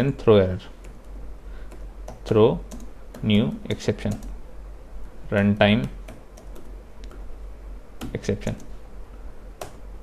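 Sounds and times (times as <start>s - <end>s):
keyboard typing: 0.8s - 4.4s, 5.0s - 7.3s, 8.0s - 8.8s.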